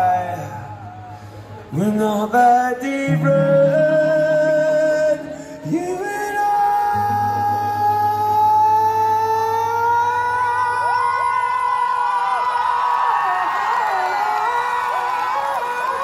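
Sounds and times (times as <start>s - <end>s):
crowd cheering and screaming: 5.0s - 16.0s.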